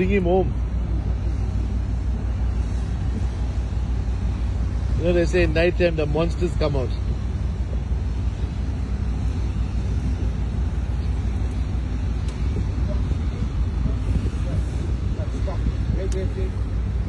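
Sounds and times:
boat engine rumbling: 0.0s - 17.0s
water noise: 0.0s - 17.0s
wind noise: 0.6s - 17.0s.

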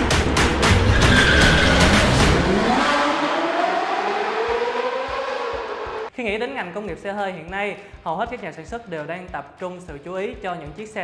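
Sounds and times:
engine revving: 0.0s - 6.1s
tyre squeal: 0.8s - 2.2s
gliding engine-like tone: 1.8s - 6.1s.

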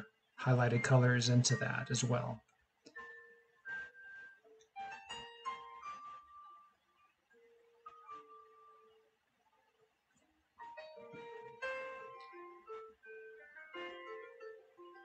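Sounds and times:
soft slow melody of single notes: 2.9s - 15.0s.

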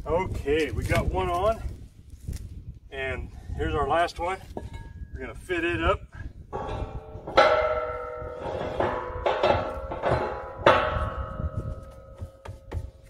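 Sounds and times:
steel bracket clanking on metal: 6.5s - 13.0s.

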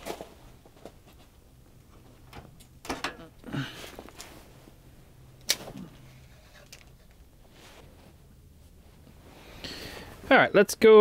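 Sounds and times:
fishing reel handling rustles: 5.4s - 7.2s.

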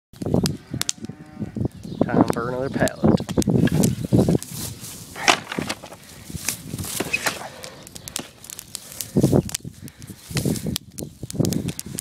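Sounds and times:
fire crackling: 0.2s - 12.0s.

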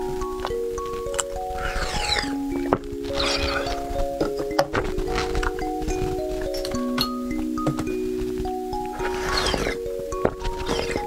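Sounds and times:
chiming mallet percussion music: 0.0s - 11.0s.

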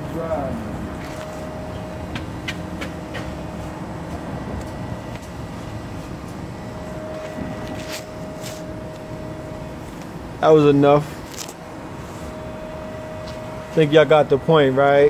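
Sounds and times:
forklift motor humming: 0.0s - 15.0s.

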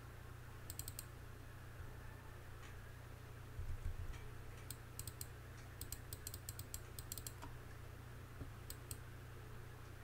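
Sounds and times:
low steady hum: 0.0s - 10.0s
keyboard clicks: 0.6s - 1.1s, 4.6s - 7.5s.

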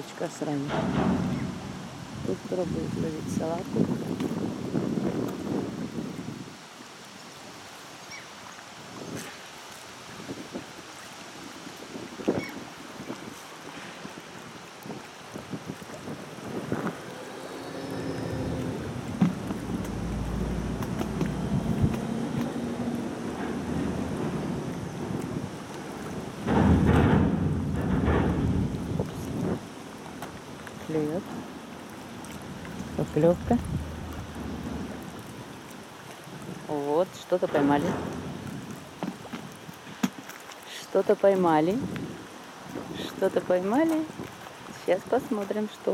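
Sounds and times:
wind buffeting microphone: 0.0s - 7.6s, 10.0s - 40.3s, 41.0s - 45.9s
low engine hum: 16.4s - 26.2s, 30.9s - 36.0s.

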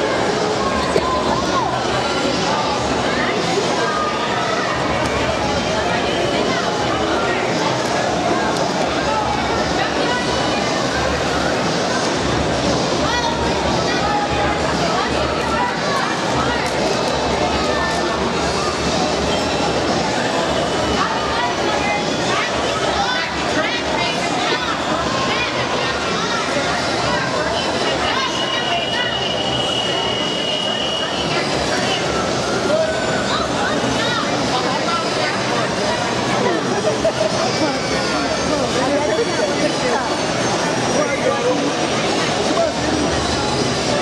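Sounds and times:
crowd hubbub: 0.0s - 44.0s
din of many voices: 0.0s - 44.0s.

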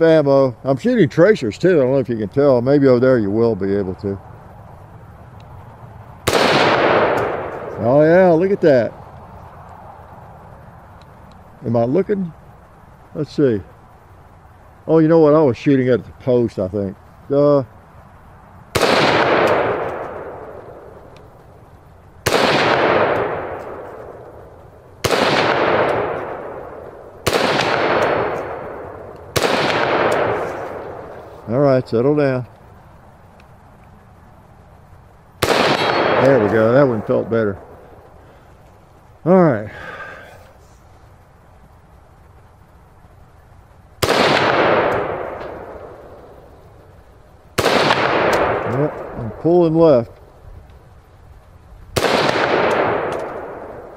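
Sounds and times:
rifle shots echoing: 6.2s - 8.8s, 18.7s - 21.2s, 22.2s - 31.3s, 35.4s - 38.2s, 44.0s - 46.6s, 47.5s - 49.3s, 52.0s - 53.9s.

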